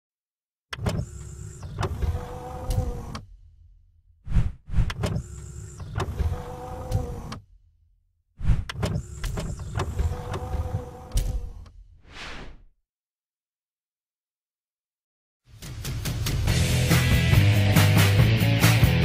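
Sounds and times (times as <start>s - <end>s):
motorised whirring and sliding: 0.7s - 3.3s, 4.4s - 7.5s, 8.6s - 11.7s.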